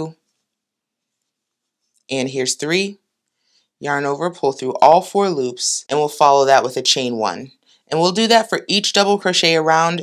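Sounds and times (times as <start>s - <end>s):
person speaking: 0.0s - 0.2s, 2.1s - 3.0s, 3.8s - 10.0s.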